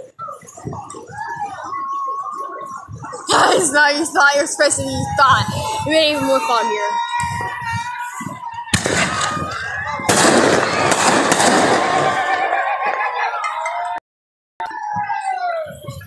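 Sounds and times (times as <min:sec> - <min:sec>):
voices: 0:00.0 - 0:14.0
fireworks banging and crackling: 0:08.7 - 0:12.4.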